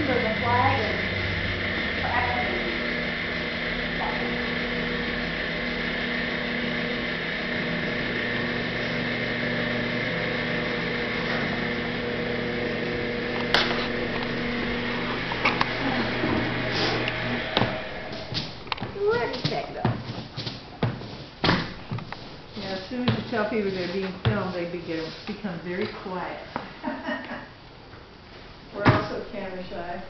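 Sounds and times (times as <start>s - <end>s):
machine motor humming: 0.0s - 19.9s.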